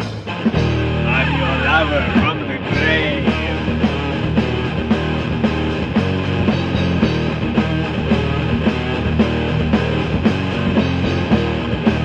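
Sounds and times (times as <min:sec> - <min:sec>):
bending lead guitar line: 0:00.0 - 0:12.0
doom metal band playing: 0:00.0 - 0:12.0.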